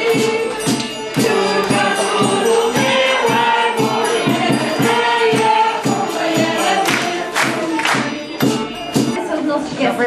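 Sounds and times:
group of voices singing: 0:00.0 - 0:09.2
steady percussion beat: 0:00.0 - 0:09.4.

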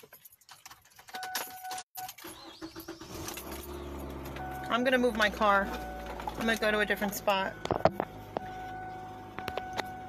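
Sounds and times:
car keys jangling: 0:00.0 - 0:04.7
car engine starting and idling: 0:02.0 - 0:10.0
steady electronic beep: 0:05.7 - 0:10.0.

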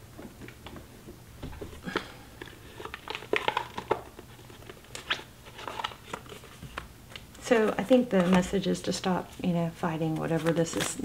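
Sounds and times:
cards being shuffled: 0:01.6 - 0:11.0.

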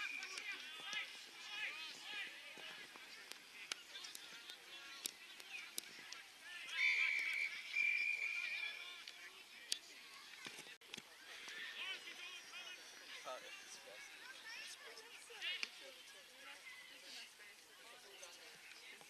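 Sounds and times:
umpire's whistle blasts: 0:06.8 - 0:08.7.

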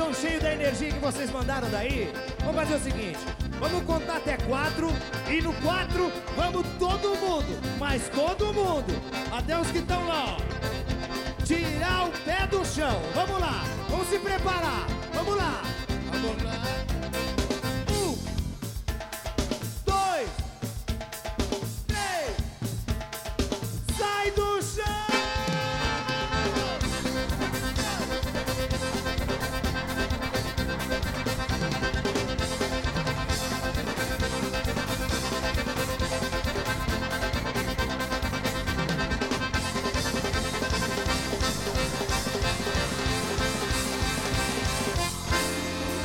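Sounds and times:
dance band with accordion and drums: 0:00.0 - 0:46.0.

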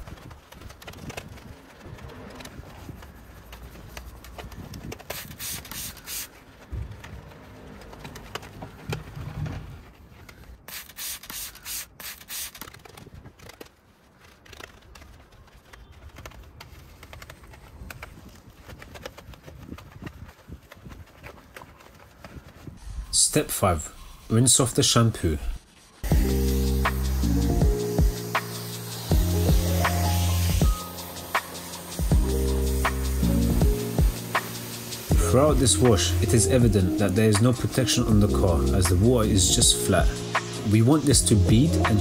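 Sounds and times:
brush scrubbing car paintwork: 0:00.0 - 0:42.0.

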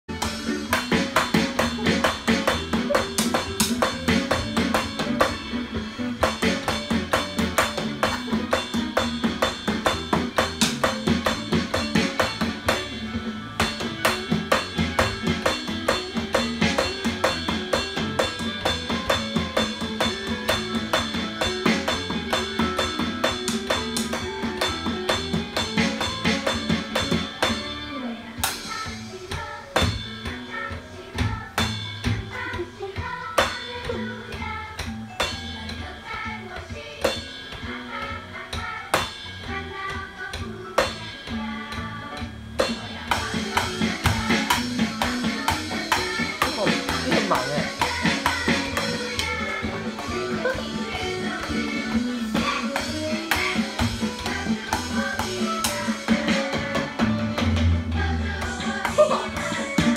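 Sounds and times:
electronic drum kit playing: 0:00.1 - 0:59.9
backing song: 0:32.1 - 0:59.9.

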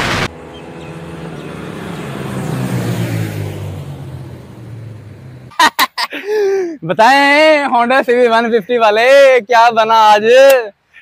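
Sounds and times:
motorcycle engine running: 0:00.0 - 0:05.5
man's voice: 0:06.8 - 0:10.8.

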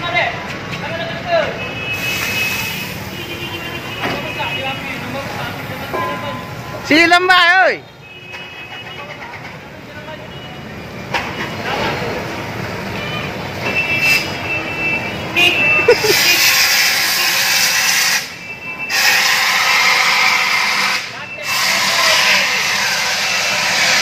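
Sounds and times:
fire extinguisher hissing: 0:01.9 - 0:03.2, 0:15.9 - 0:24.0
people's voices: 0:14.8 - 0:17.6.

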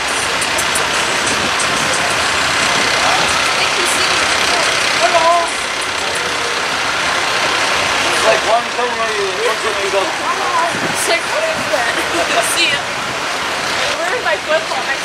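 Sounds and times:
faint voices: 0:00.0 - 0:15.0
vehicle engine running: 0:00.0 - 0:15.0
louder voice: 0:08.0 - 0:12.9.

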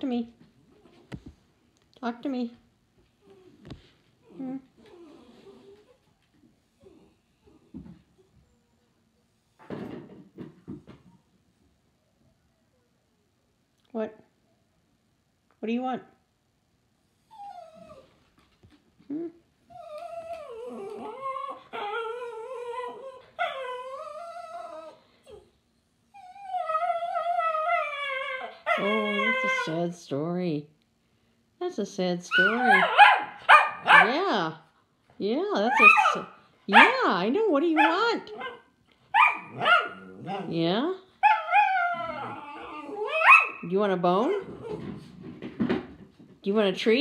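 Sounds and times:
dog whining: 0:03.2 - 0:06.0, 0:17.2 - 0:18.2, 0:19.1 - 0:25.5, 0:26.1 - 0:29.8, 0:32.3 - 0:34.1, 0:35.6 - 0:36.9, 0:37.8 - 0:40.6, 0:41.2 - 0:43.7
dog yipping: 0:32.3 - 0:34.2, 0:35.7 - 0:37.0, 0:37.8 - 0:40.5, 0:41.2 - 0:43.7.

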